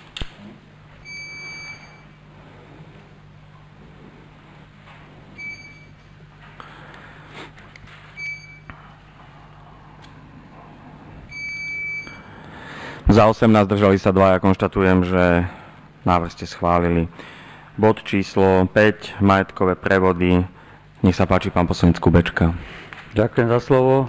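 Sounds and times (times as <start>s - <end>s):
low steady hum: 0.0s - 24.0s
short electronic beeps: 1.0s - 2.2s, 8.2s - 8.7s.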